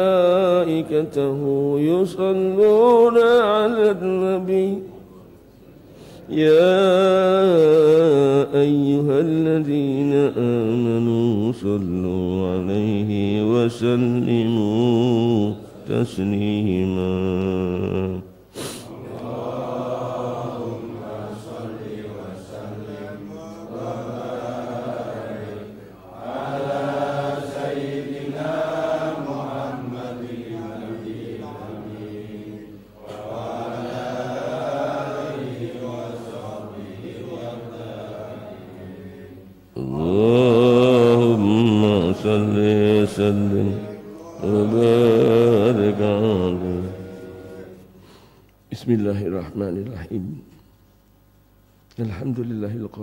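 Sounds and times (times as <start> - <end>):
men chanting: 18.8 - 47.9.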